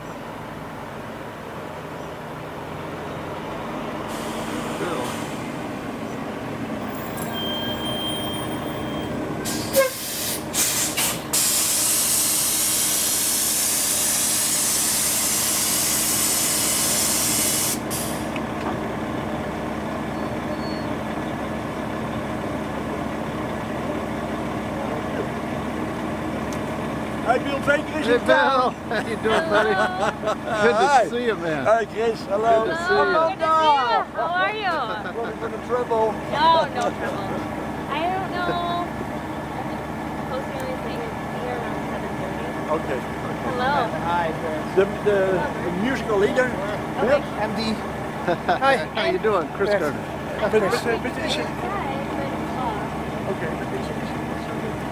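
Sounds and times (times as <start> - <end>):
bus engine: 0.0 - 54.9
air brake hiss: 4.1 - 5.5, 9.4 - 18.3
sharp air bursts: 4.1 - 5.5, 9.4 - 18.3.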